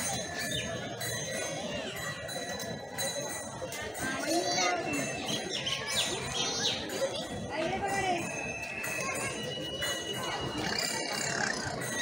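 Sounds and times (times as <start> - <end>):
children calling and chattering: 0.0 - 12.0
crowd: 0.0 - 12.0.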